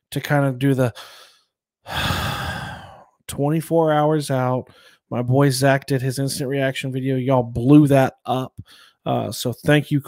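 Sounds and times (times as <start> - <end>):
man sighing: 0.9 - 3.2.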